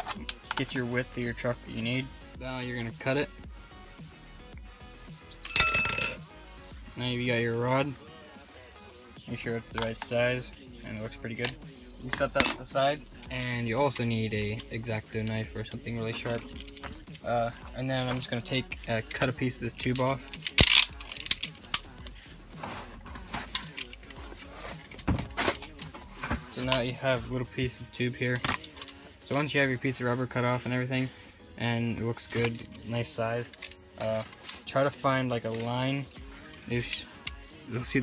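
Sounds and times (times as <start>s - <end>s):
bright metallic ring: 5.4s - 6.2s
faint scraping and handling: 22.6s - 26.8s.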